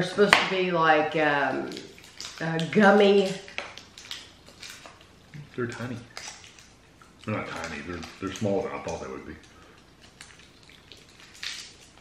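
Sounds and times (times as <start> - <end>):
candy wrappers crinkling: 1.5 - 12.0.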